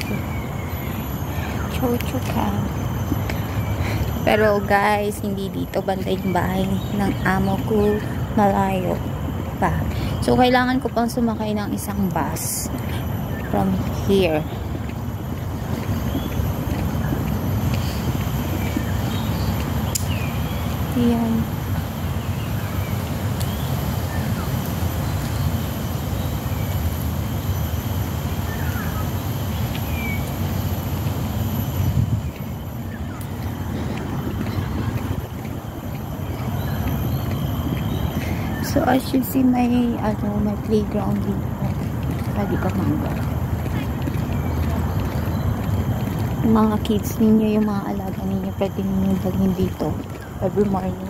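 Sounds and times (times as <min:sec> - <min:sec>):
wind buffeting microphone: 0:00.0 - 0:51.0
sharp click: 0:19.9 - 0:20.2.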